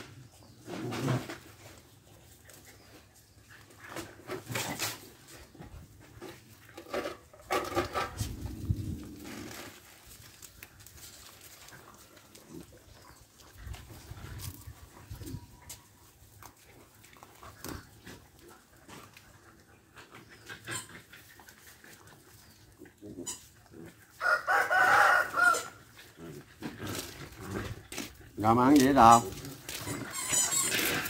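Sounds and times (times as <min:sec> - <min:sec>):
rooster crowing: 0:24.2 - 0:25.8.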